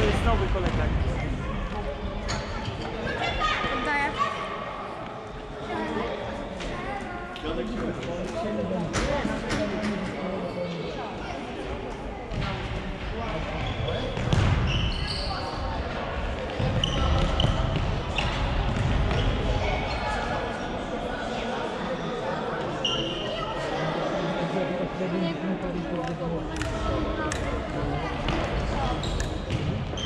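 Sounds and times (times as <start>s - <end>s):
voices in a large hall: 0.0s - 30.0s.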